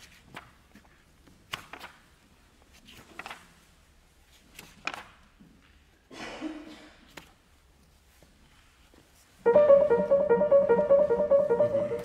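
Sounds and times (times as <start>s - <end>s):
grand piano repeated notes: 9.4s - 12.0s.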